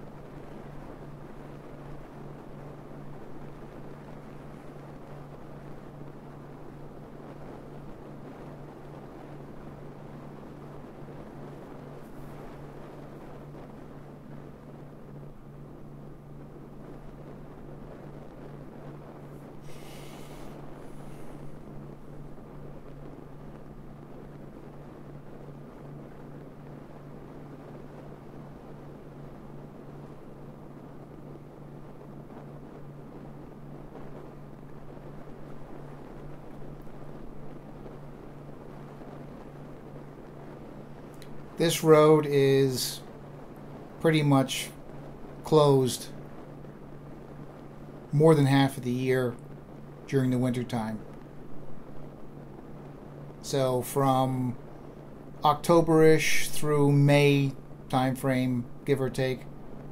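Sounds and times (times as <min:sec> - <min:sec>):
brief loud hiss: 0:19.6 - 0:21.5.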